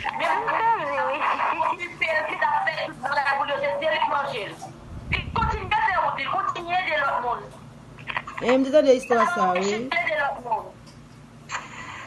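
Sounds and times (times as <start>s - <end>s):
woman's voice through phone speaker: 0.1s - 7.5s, 8.3s - 10.8s.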